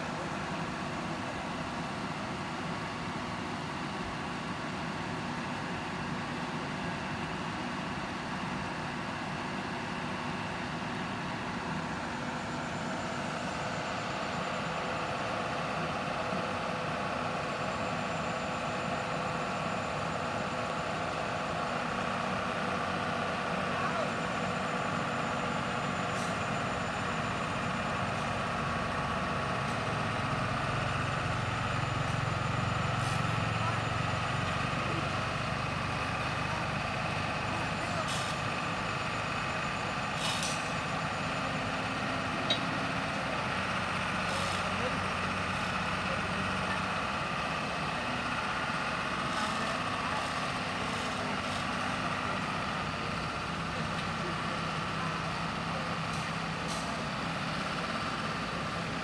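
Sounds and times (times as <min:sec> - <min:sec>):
heavy machinery engines idling: 0:00.0 - 0:59.0.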